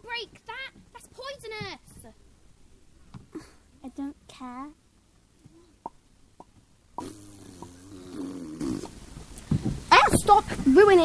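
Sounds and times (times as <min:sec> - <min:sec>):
person making buzzing vocal noise: 0:06.4 - 0:09.0.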